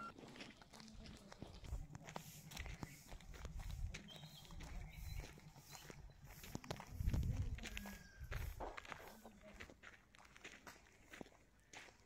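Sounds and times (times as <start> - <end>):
footsteps on dirt: 0.0 - 12.0.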